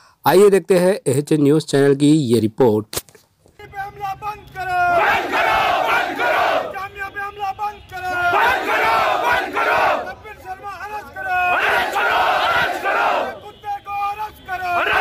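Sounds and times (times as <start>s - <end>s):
crowd chanting and shouting: 4.4s - 7.0s, 7.8s - 15.0s.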